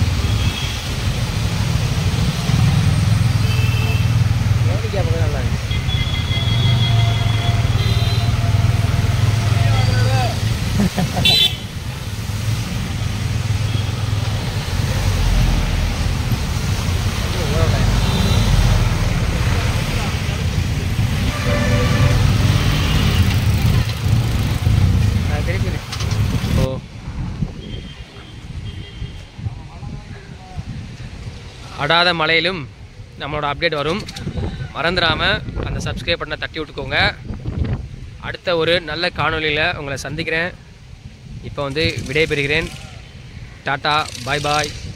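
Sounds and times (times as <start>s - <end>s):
traffic on wet street: 0.0s - 44.9s
vehicle horns tooting: 3.4s - 4.2s, 5.6s - 10.4s, 11.2s - 11.8s, 17.8s - 18.9s, 21.1s - 23.4s, 27.6s - 29.3s.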